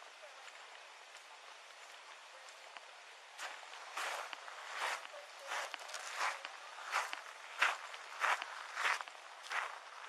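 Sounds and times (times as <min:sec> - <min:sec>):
footsteps walking: 0:03.4 - 0:10.0.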